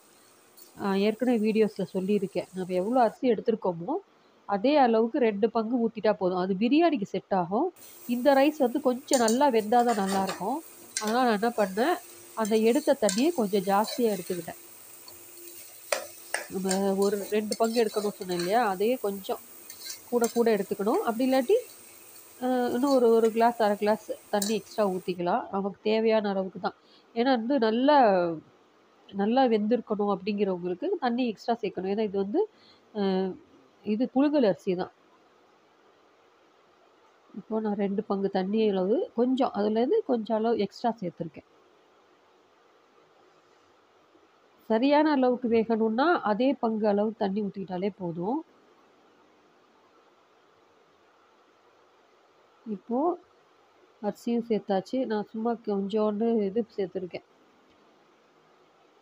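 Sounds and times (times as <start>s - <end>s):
food sizzling in a pot: 0.0s - 3.2s, 7.8s - 25.2s
faint steady hum: 0.0s - 59.0s
person speaking: 8.0s - 14.6s, 15.9s - 21.7s, 22.4s - 25.4s.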